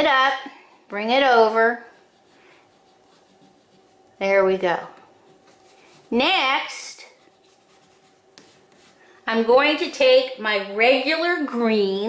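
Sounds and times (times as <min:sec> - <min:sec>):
crayon rubbing on paper: 0:01.4 - 0:09.1.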